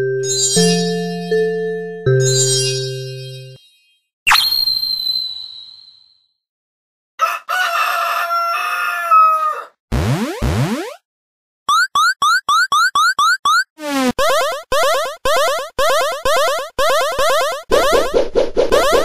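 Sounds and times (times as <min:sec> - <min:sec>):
rooster crowing: 0:07.2 - 0:09.8.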